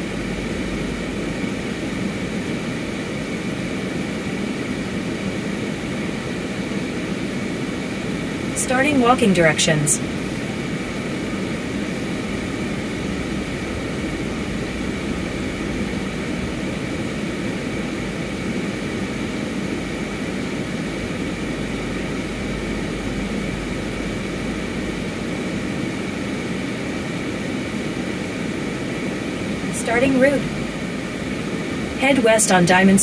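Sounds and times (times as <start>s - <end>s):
car interior engine hum: 0.0s - 3.8s, 8.1s - 33.0s.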